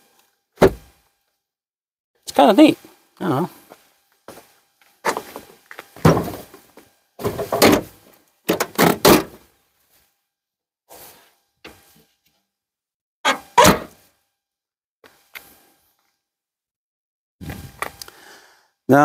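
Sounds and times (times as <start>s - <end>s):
car tailgate thunks and clunks: 0.6s - 0.9s, 6.0s - 6.6s, 7.2s - 9.4s, 13.3s - 14.0s.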